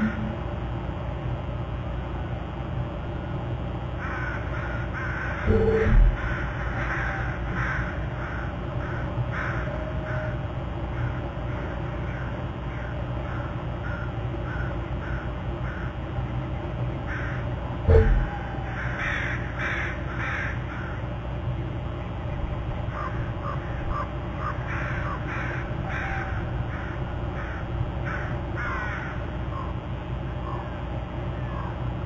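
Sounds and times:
steady low rumble: 0:00.0 - 0:32.0.

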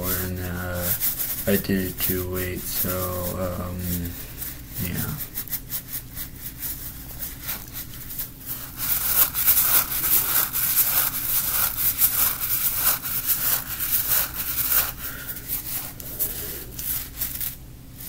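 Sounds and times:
hands rubbing rubber toy: 0:00.0 - 0:18.0.

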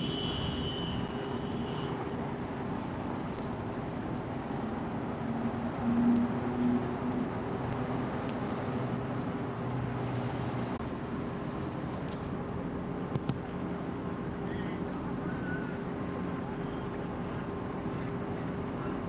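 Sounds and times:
car engines and tyres: 0:00.0 - 0:19.0
vehicle humming: 0:00.0 - 0:19.0.

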